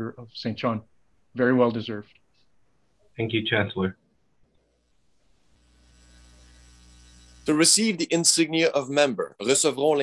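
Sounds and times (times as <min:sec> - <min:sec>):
electrical mains hum: 0:00.3 - 0:10.0.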